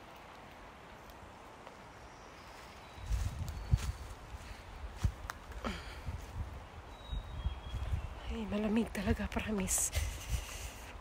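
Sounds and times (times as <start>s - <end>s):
footsteps on forest trail: 0.0s - 11.0s
outdoor hiss: 9.7s - 11.0s.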